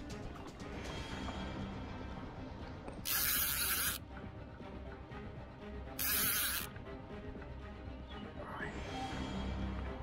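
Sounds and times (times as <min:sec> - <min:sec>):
fishing reel drag buzzing: 0:03.1 - 0:04.0, 0:06.0 - 0:06.7.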